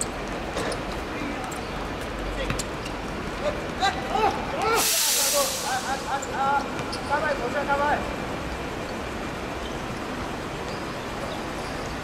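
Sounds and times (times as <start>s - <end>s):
loud burst of hiss: 4.7s - 6.2s.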